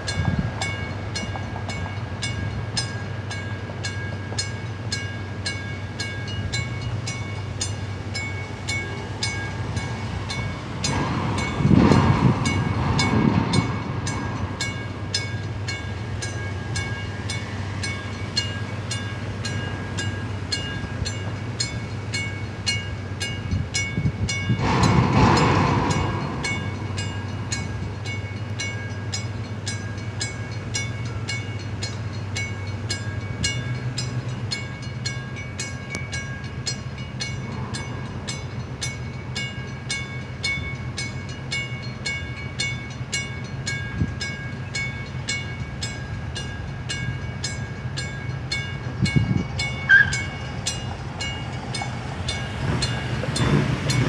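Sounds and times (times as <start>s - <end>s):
wind noise: 0.0s - 2.7s, 9.7s - 15.1s, 23.3s - 28.1s, 48.8s - 54.0s
warning bell ringing: 0.0s - 54.0s
vehicle approaching: 7.1s - 22.7s, 24.1s - 31.6s, 47.7s - 54.0s.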